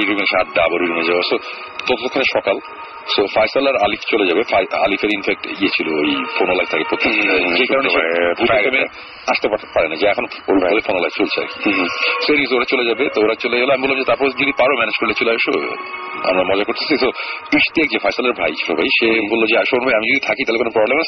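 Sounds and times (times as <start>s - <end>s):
talking over radio: 0.0s - 21.0s.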